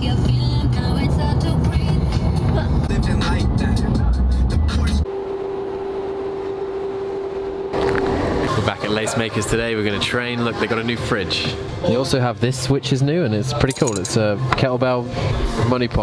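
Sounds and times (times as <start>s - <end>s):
car cabin road rumble: 0.0s - 5.0s
music: 0.0s - 5.0s, 8.5s - 16.0s.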